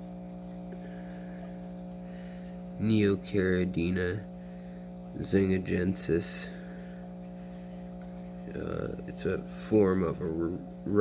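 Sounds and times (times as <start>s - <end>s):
faint water noise: 0.0s - 11.0s
low electrical hum: 0.0s - 11.0s.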